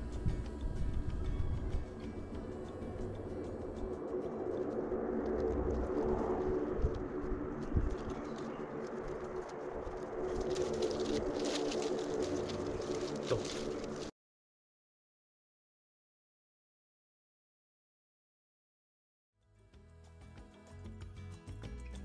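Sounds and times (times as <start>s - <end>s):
palm leaves rustling: 0.0s - 14.1s.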